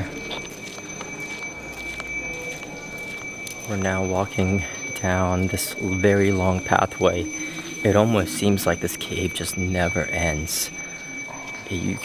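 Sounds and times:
high-pitched whine: 0:00.0 - 0:12.0
light footsteps on path: 0:00.3 - 0:03.8.

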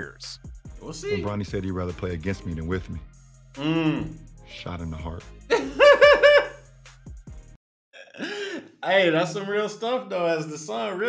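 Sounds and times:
man laughing: 0:05.5 - 0:06.6, 0:08.0 - 0:08.8.

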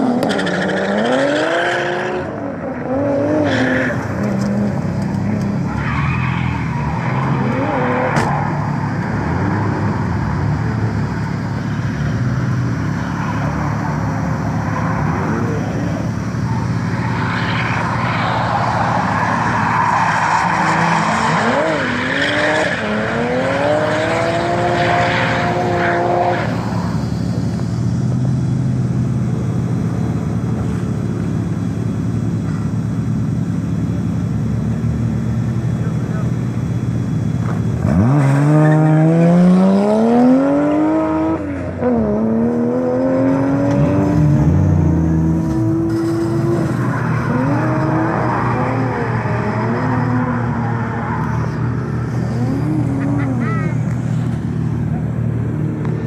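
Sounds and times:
car engines revving hard: 0:00.0 - 0:56.0
tyres screeching: 0:02.9 - 0:09.4.

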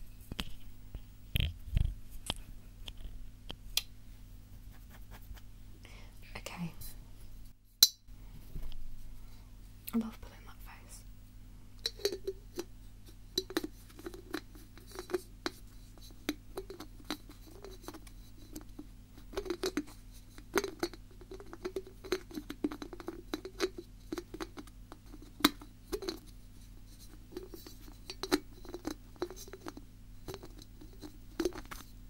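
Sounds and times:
scratchy touches: 0:04.5 - 0:05.5.

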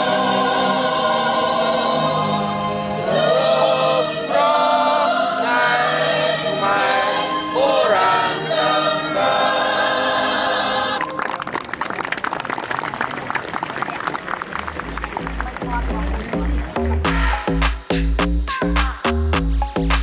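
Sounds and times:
choir singing an anthem with music: 0:00.0 - 0:11.0.

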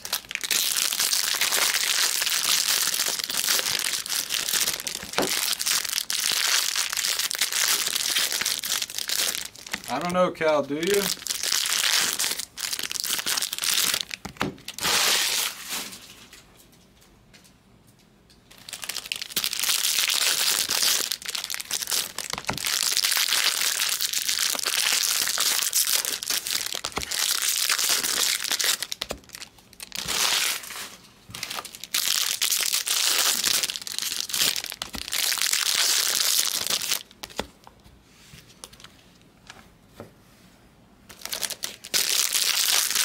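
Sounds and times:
foil wrappers crinkling: 0:00.0 - 0:16.8, 0:18.5 - 0:37.5, 0:41.1 - 0:43.0.

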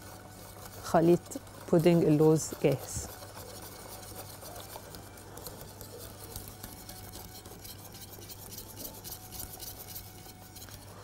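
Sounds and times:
wire whisk scratching metal pot: 0:00.0 - 0:11.0.

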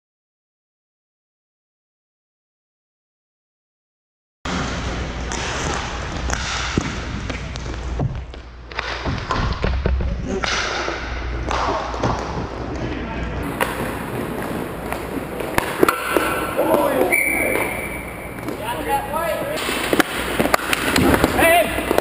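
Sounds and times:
skate wheels rolling on floor: 0:12.0 - 0:22.0
players calling out: 0:13.4 - 0:22.0
sticks and puck knocking: 0:13.5 - 0:16.9, 0:19.6 - 0:22.0.

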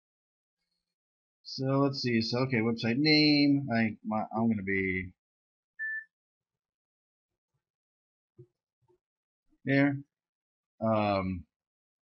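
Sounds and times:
short electronic beep: 0:05.8 - 0:06.1.

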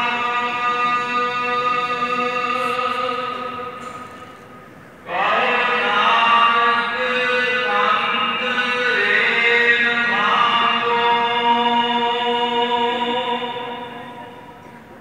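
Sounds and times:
devotional chanting: 0:00.0 - 0:15.0.

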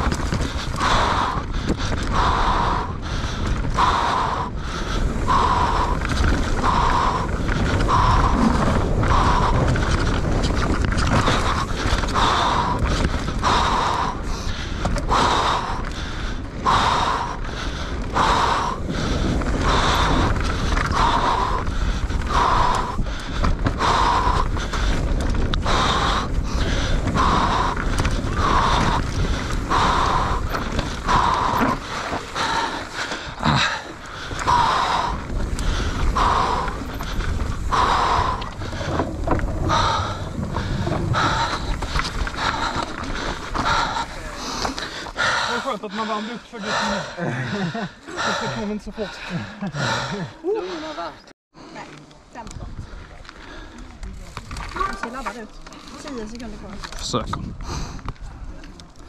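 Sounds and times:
bike rolling over dirt trail: 0:00.0 - 0:46.1, 0:51.8 - 0:59.0
person breathing hard: 0:00.0 - 0:51.9, 0:57.6 - 0:58.2.

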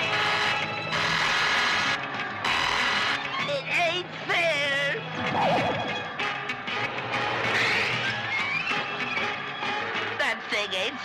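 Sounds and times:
cartoon action music: 0:05.0 - 0:09.4.

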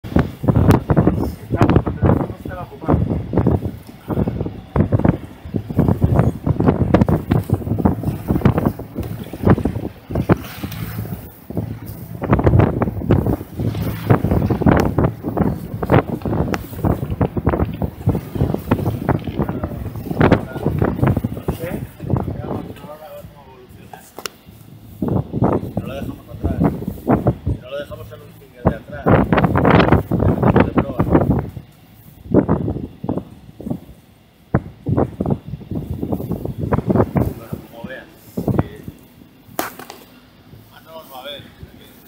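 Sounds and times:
indistinct talking: 0:00.0 - 0:31.6
wind buffeting microphone: 0:00.0 - 0:39.6.

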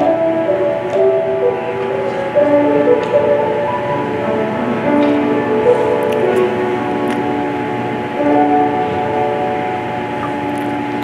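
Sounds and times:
grand piano chords: 0:00.0 - 0:11.0.

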